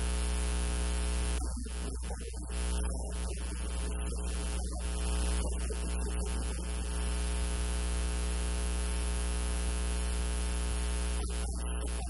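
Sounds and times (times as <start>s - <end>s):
static hiss: 0.0s - 12.0s.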